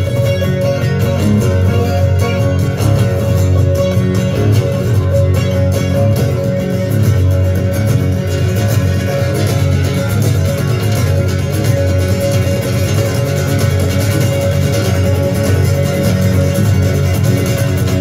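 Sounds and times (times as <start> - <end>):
amplified guitars duet: 0.0 - 18.0.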